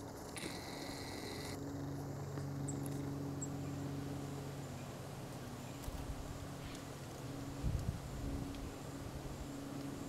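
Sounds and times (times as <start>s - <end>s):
low multi-pitched hum: 0.0s - 10.0s.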